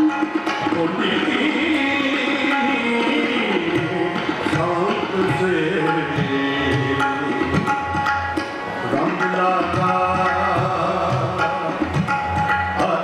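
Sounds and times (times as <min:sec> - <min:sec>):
harmonium: 0:00.0 - 0:13.0
tabla rhythm: 0:00.0 - 0:13.0
man singing devotional song: 0:00.6 - 0:08.0, 0:08.9 - 0:13.0.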